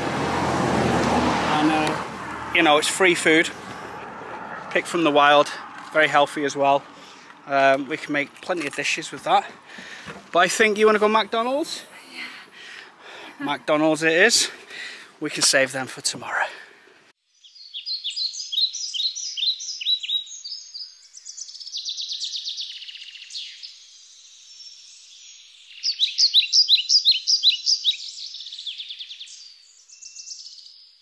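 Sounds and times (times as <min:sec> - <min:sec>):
small birds chirping: 0:17.2 - 0:31.0
buzzy bird trill: 0:17.3 - 0:30.8.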